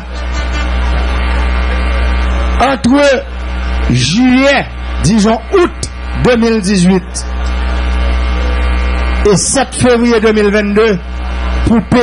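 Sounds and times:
buzzy electrical mains hum: 0.0 - 12.0.

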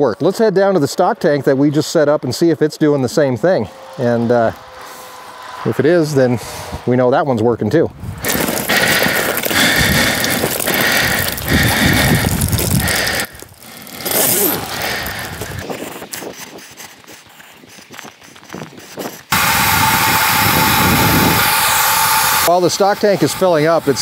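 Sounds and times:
water rushing through float valve: 19.3 - 24.0.

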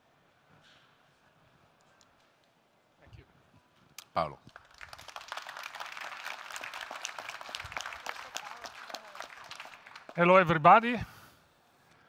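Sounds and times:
audience applauding: 4.5 - 11.0.

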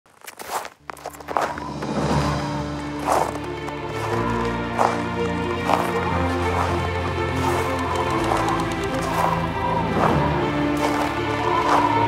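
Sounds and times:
low music drone: 1.2 - 12.0.

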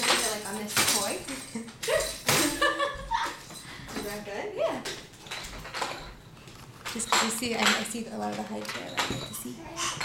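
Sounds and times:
baby vocalizing: 9.6 - 10.0.

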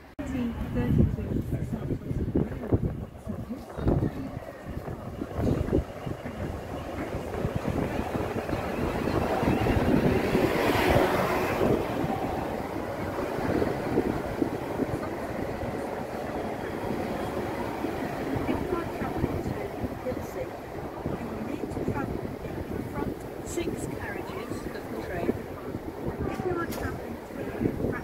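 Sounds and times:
electric train passing: 0.0 - 28.0
wind buffeting microphone: 0.0 - 28.0.

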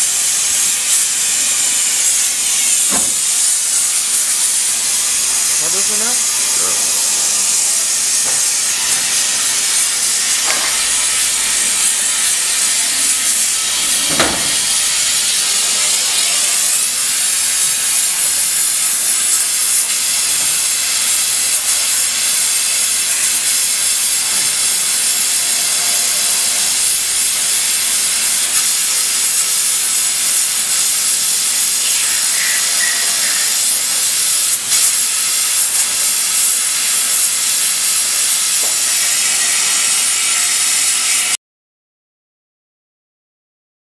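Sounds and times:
lathe running with loud hiss: 0.0 - 41.4
sharp knock: 2.9 - 3.2, 14.1 - 14.6.

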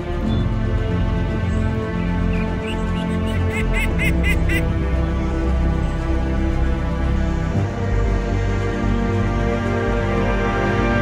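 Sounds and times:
background music: 0.0 - 11.0
ducks quacking: 1.6 - 5.0.

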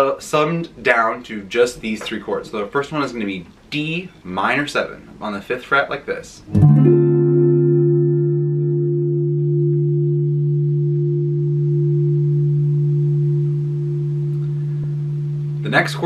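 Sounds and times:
electric guitar chord ringing: 6.5 - 16.0.

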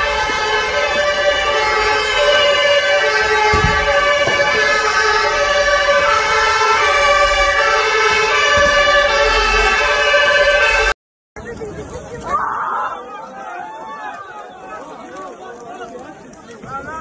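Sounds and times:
emergency vehicle sirens: 0.0 - 11.0.

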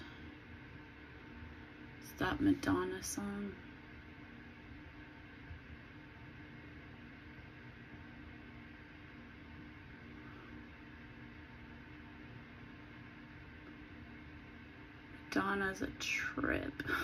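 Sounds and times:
low hum with faint hiss: 0.0 - 17.0.

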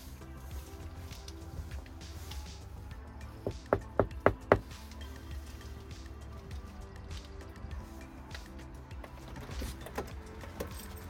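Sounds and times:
background music: 0.0 - 11.0
knocks on a door: 3.4 - 4.6.

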